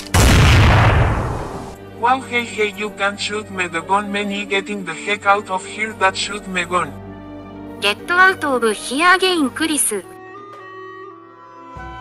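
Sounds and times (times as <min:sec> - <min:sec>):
loud gunshot: 0:00.1 - 0:01.8.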